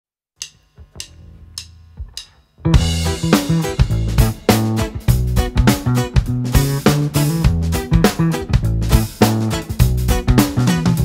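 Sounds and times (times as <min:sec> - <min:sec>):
drumsticks clicking together: 0:00.4 - 0:02.4
band playing drums and bass: 0:00.8 - 0:11.0.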